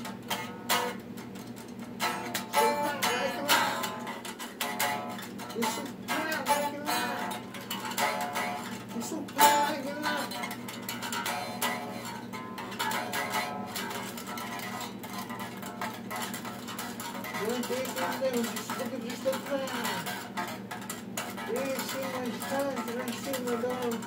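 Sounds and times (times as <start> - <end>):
electric guitar picked notes: 0.0 - 24.0.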